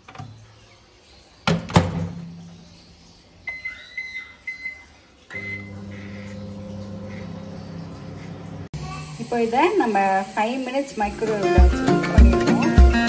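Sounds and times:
microwave keypad beeps: 3.5s - 6.3s
microwave start beep: 3.5s - 8.7s
microwave oven humming: 3.5s - 9.3s.

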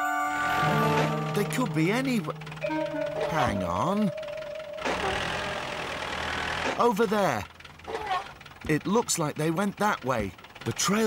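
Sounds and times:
tractor engine running: 0.3s - 11.0s
steady held tone: 0.6s - 6.5s.

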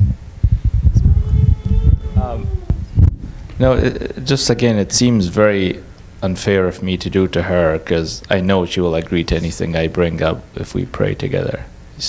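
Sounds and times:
microphone handling thumps: 0.0s - 4.1s.

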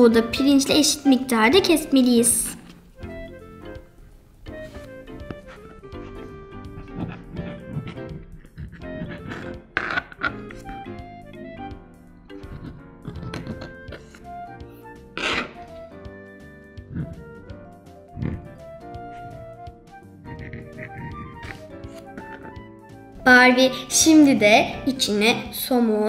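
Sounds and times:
light instrumental music: 0.0s - 26.0s.

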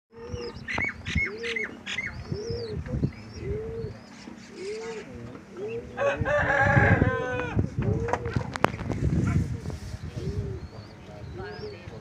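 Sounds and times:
small birds chirping: 0.1s - 6.3s, 7.5s - 12.0s
pigeons cooing: 0.1s - 12.0s.

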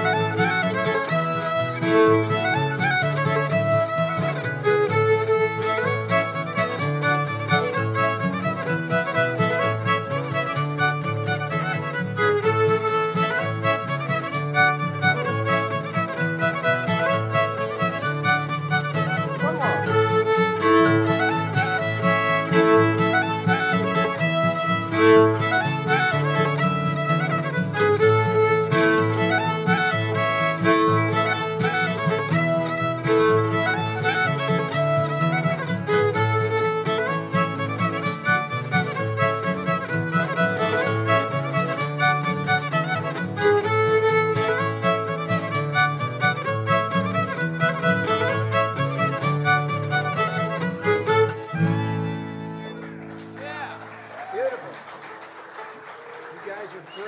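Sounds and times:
piano accordion: 0.0s - 53.1s
strummed acoustic guitar: 0.0s - 53.4s
fiddle playing: 0.0s - 54.0s.

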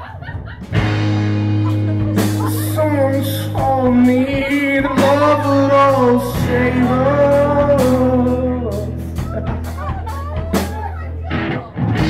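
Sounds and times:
drum kit: 0.0s - 12.0s
electric bass: 0.0s - 12.0s
electric guitar: 0.0s - 12.0s.

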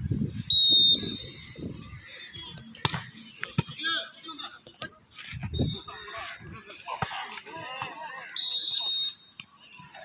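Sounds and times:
referee's whistle blast: 0.5s - 1.4s, 8.4s - 9.3s
crowd chatter: 0.9s - 10.0s.

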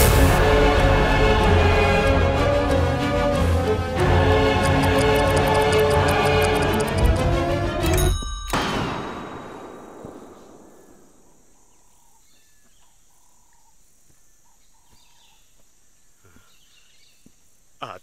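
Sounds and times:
woodland ambience: 0.0s - 18.0s.

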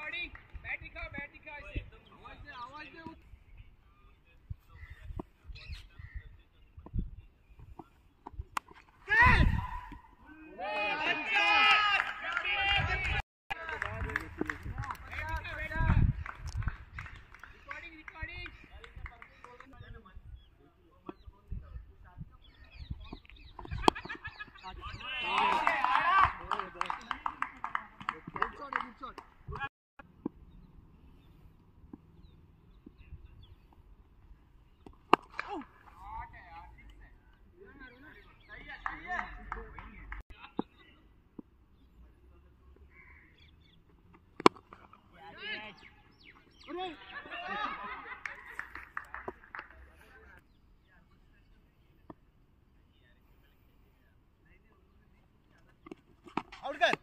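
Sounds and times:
distant bird chirps: 1.2s - 8.3s, 16.0s - 25.1s, 30.0s - 48.2s
cricket bat hitting ball: 34.8s - 35.6s, 44.4s - 44.8s.

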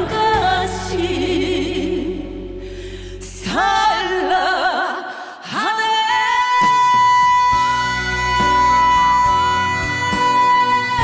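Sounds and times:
band accompaniment: 6.6s - 11.0s.

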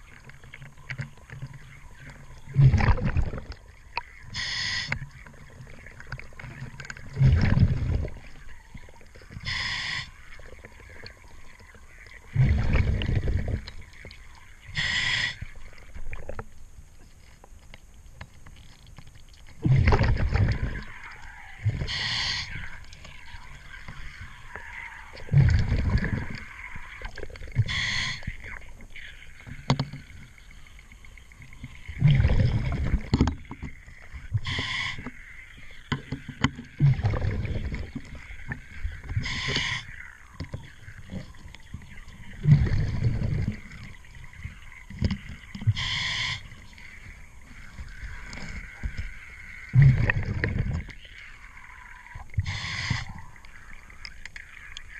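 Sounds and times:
diver exhaling bubbles: 2.4s - 3.6s, 7.0s - 8.3s, 12.3s - 13.7s, 19.6s - 28.4s, 31.9s - 33.3s, 36.7s - 38.3s, 42.2s - 44.0s, 47.9s - 51.0s
regulator hissing inhale: 4.4s - 4.9s, 9.4s - 10.2s, 14.8s - 15.5s, 21.8s - 22.7s, 27.7s - 28.3s, 45.8s - 46.5s
faint clicks: 43.3s - 54.9s.

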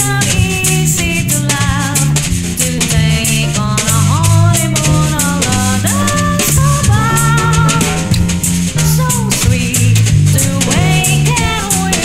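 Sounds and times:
electric bass: 0.0s - 12.0s.

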